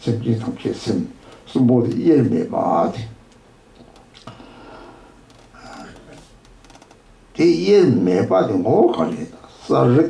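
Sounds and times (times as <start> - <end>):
man talking loudly: 0.0 - 3.2, 7.4 - 10.0.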